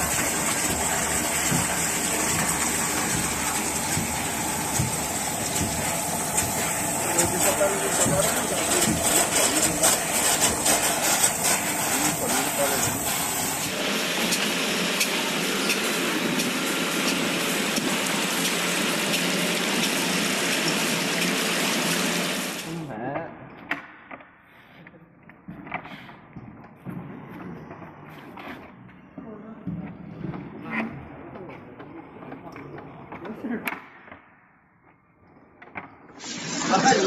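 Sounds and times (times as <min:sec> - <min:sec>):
water rushing into a tank: 0:00.0 - 0:22.9, 0:36.1 - 0:37.0.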